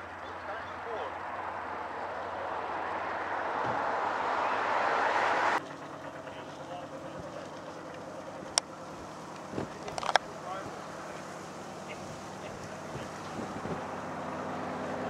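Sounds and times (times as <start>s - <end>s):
boat engine accelerating: 0.0s - 15.0s.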